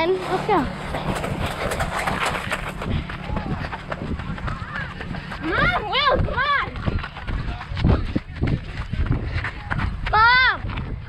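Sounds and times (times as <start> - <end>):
running footsteps: 0.0 - 11.0
wind buffeting microphone: 0.0 - 11.0.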